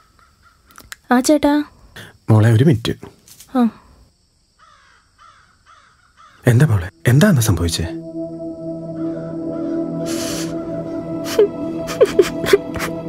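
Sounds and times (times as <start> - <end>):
crow cawing: 4.6 - 6.5, 9.0 - 9.8
film background music: 6.4 - 13.0.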